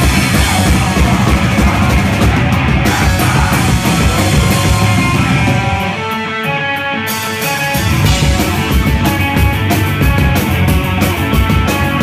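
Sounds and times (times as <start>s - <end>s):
distorted guitar held notes ringing: 0.0s - 12.0s
heavy rock band playing live: 0.0s - 12.0s.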